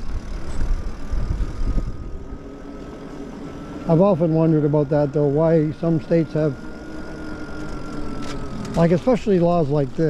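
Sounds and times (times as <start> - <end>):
wind rumbling on microphone: 0.0 - 2.6
electric motor whine: 0.0 - 10.0.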